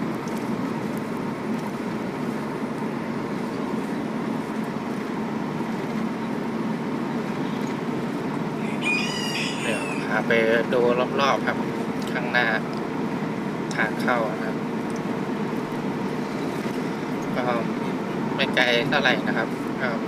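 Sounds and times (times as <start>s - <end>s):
steady background noise: 0.0s - 20.0s
rooster crowing: 8.6s - 10.2s.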